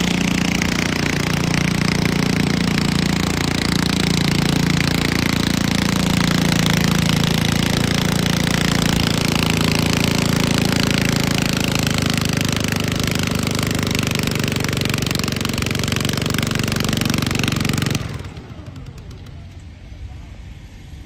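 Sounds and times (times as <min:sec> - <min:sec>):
garden tractor engine at full throttle: 0:00.0 - 0:20.4.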